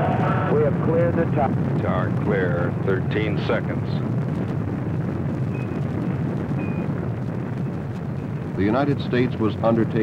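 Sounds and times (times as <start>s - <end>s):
rocket engines roaring: 0.0s - 10.0s.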